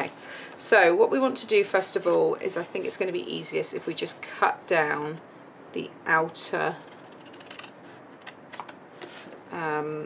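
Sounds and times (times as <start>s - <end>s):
scissors snipping cardstock: 6.8s - 8.7s.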